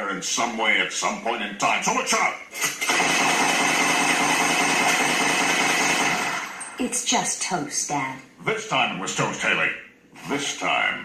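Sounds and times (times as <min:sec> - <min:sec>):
cartoon gunfire sound effect: 0:02.8 - 0:06.6.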